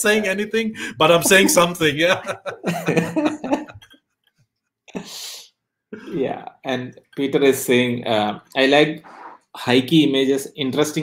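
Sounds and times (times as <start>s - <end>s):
person puffing breath: 0.8s - 1.0s.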